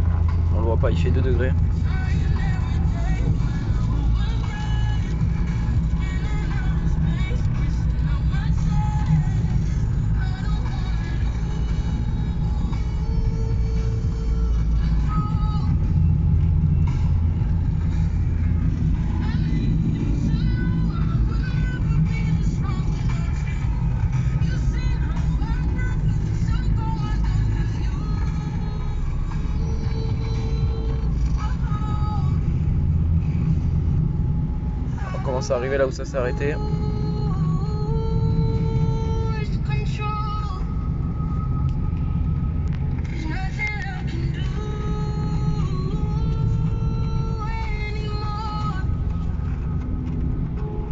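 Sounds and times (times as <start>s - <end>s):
car driving rumble: 0.0s - 50.9s
music playing: 0.0s - 50.9s.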